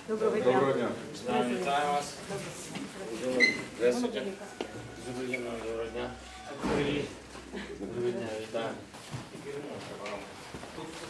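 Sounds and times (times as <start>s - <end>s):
low indistinct voices: 0.0s - 11.0s.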